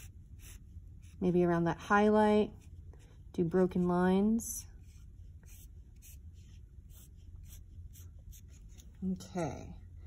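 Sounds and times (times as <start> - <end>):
marker scratching on paper: 0.0 - 3.9, 4.7 - 8.9.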